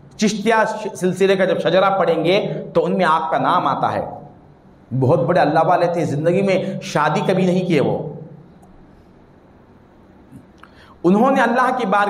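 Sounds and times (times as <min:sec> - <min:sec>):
faint background hiss: 0:00.0 - 0:12.0
soft breath: 0:10.6 - 0:11.0.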